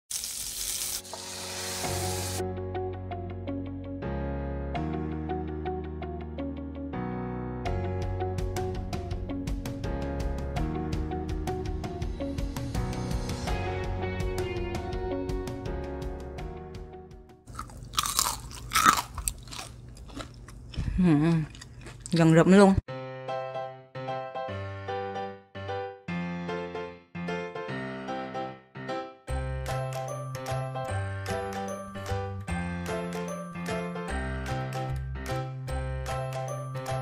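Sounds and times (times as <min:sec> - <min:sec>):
food sizzling in waffle maker: 0:00.1 - 0:02.4
light keyboard music: 0:01.6 - 0:19.0, 0:22.9 - 0:37.0
guitar music: 0:13.5 - 0:17.0
crispy pancake crunching: 0:17.5 - 0:22.1.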